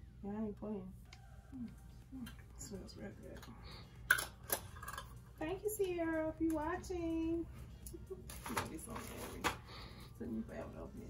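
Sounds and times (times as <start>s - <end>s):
woman speaking: 0.2s - 3.5s, 5.4s - 9.6s, 10.2s - 11.0s.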